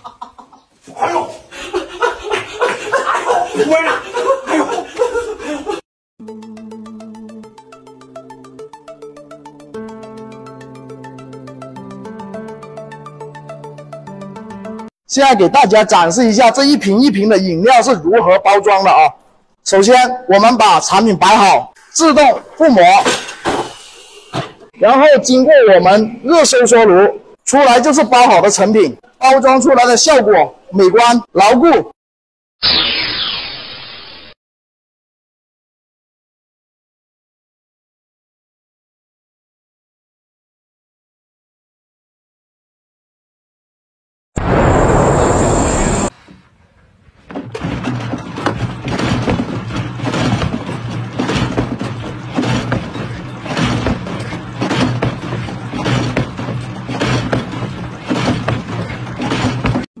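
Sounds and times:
whoosh: 0:44.4 - 0:46.1
metal clanks and rattles: 0:46.2 - 0:59.9.

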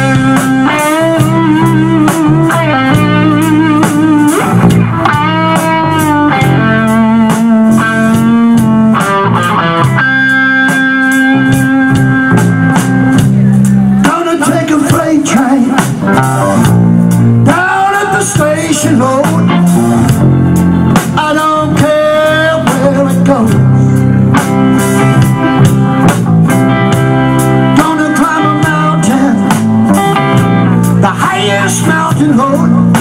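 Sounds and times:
bending electric guitar lines: 0:00.0 - 0:33.0
live rock band through pa: 0:00.0 - 0:33.0.

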